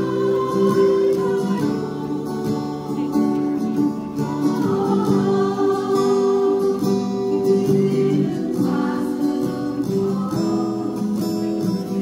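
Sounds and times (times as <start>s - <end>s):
ukulele ensemble with guitar strumming: 0.0s - 12.0s.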